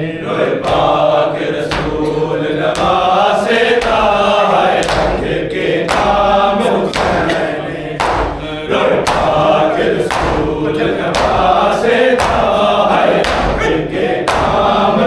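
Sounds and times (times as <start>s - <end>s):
men chanting: 0.0s - 15.0s
hands striking chests: 4.8s - 5.3s, 6.9s - 14.7s.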